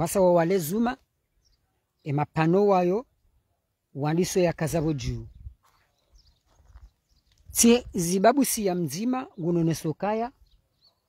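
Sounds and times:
man speaking: 4.0 - 5.3.

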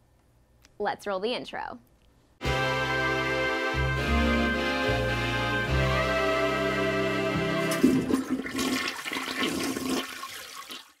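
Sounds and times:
theme tune note: 2.4 - 8.1
toilet flushing: 7.6 - 11.0.

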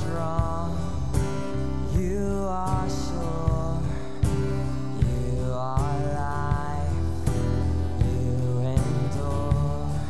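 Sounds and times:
acoustic guitar: 0.0 - 10.0
keyboard: 0.0 - 10.0.

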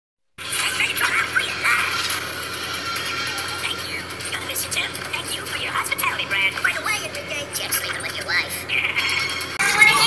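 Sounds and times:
processed robot voice: 0.4 - 2.2, 2.9 - 10.0.

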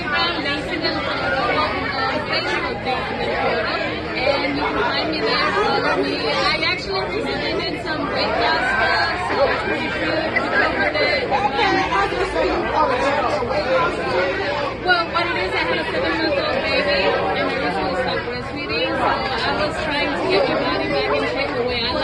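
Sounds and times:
people talking over one another: 0.0 - 22.0.

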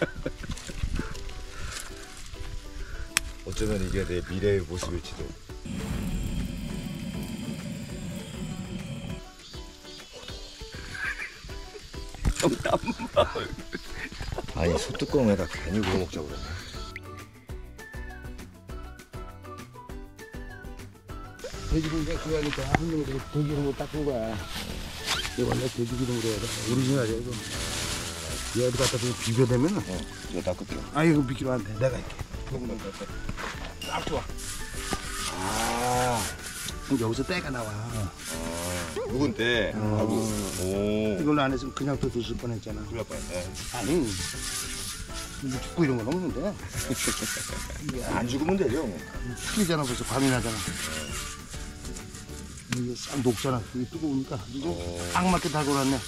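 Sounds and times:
background music: 0.0 - 56.0
fat hissing on hot iron: 5.2 - 14.4, 15.0 - 17.0, 21.4 - 31.0, 34.1 - 41.4, 43.0 - 56.0
torch flame roaring: 5.6 - 9.3.

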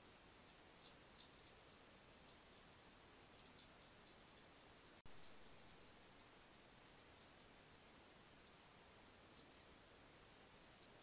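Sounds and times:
recording hiss: 0.0 - 11.0
hedgehog crunching biscuits: 0.1 - 11.0.

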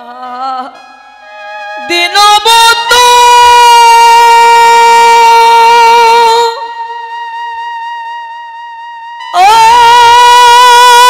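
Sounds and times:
woman singing long high note: 9.3 - 11.0.

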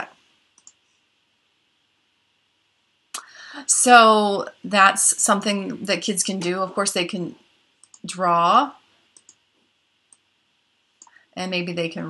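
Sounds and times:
computer mouse clicks: 0.5 - 0.8, 7.8 - 8.1, 9.1 - 9.4, 10.1 - 10.3.

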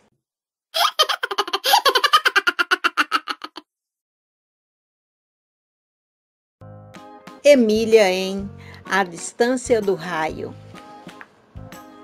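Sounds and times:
person laughing: 0.8 - 3.6.

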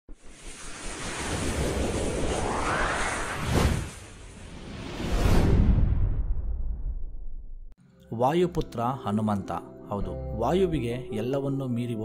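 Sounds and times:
rushing whoosh: 0.1 - 7.2.

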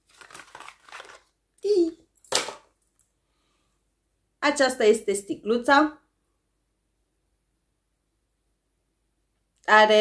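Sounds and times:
packaging rustling and crinkling: 0.0 - 1.4.

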